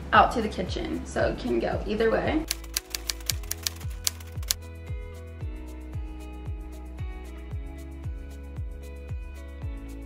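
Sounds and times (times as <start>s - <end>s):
background music with soft beat: 0.0s - 10.0s
typewriter key clicks: 2.5s - 4.6s.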